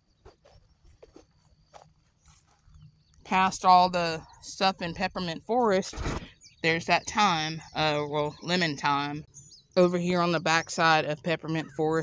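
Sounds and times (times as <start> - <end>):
footsteps on dry straw: 0.2 - 2.9.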